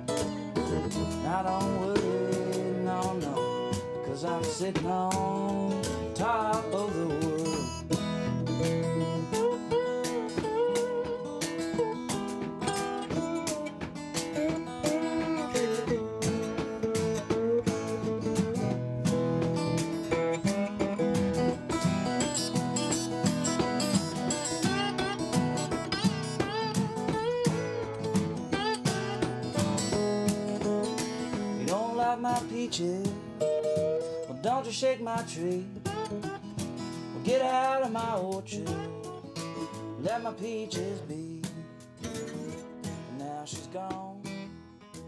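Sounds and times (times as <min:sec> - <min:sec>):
blues acoustic guitar: 0:00.0 - 0:45.0.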